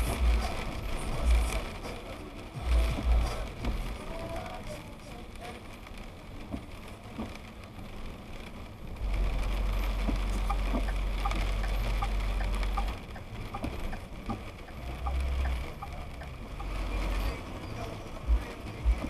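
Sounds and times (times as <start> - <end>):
heavy deep rumble: 0.0 - 5.4, 6.2 - 19.0
car road noise hiss on wet road: 0.0 - 19.0
light ticks: 9.4 - 17.4.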